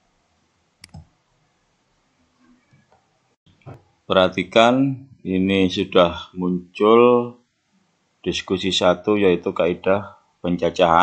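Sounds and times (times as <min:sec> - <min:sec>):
faint room hiss: 0:00.0 - 0:11.0
computer mouse clicking: 0:00.8 - 0:01.1.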